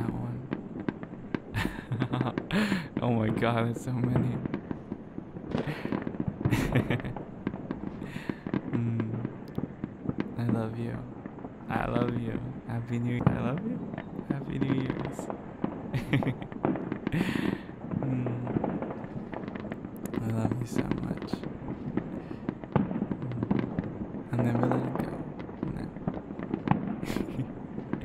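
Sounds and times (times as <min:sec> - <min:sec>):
fireworks crackling and popping: 0:00.0 - 0:28.0
low hum: 0:23.2 - 0:25.2.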